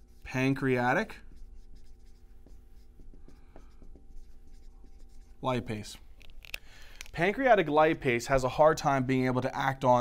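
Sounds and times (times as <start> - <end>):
marker squeaking on whiteboard: 0.0 - 5.7.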